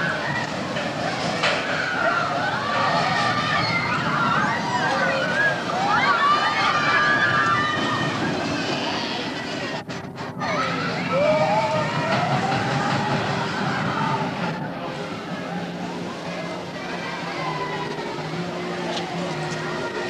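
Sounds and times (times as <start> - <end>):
people's voices: 0.0 - 20.0.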